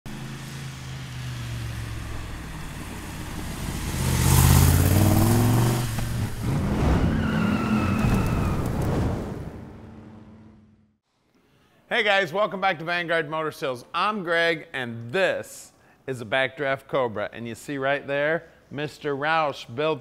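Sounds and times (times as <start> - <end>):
engine revving: 0.1 - 8.2
car engine driving by: 0.1 - 10.9.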